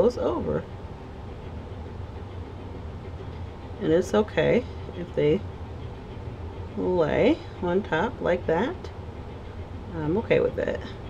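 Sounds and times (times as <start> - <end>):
low room hum with hiss: 0.0 - 11.0.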